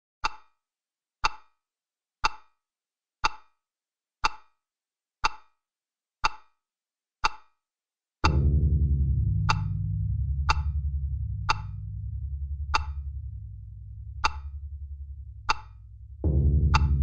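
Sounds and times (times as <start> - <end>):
sharp clock-like tick: 0.2 - 0.6, 1.2 - 1.6, 2.2 - 2.6, 3.2 - 3.6, 4.2 - 4.6, 5.2 - 5.6, 6.2 - 6.6, 7.2 - 7.6, 14.2 - 16.0, 16.6 - 17.0.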